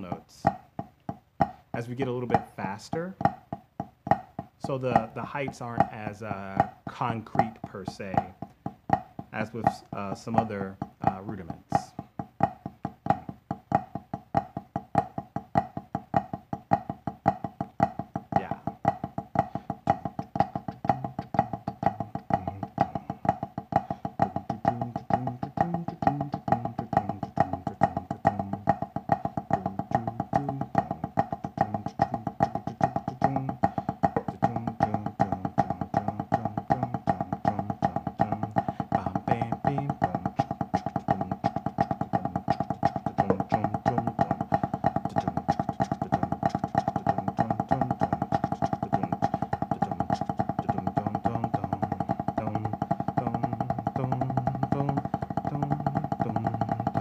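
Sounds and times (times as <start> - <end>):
drumsticks on practice pad: 0.0 - 57.0.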